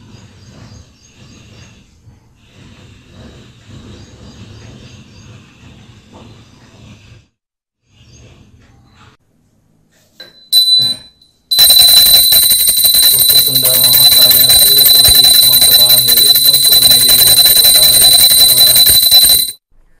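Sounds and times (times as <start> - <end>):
high alarm-like tone: 10.6 - 19.6
electronic news jingle: 11.5 - 19.6.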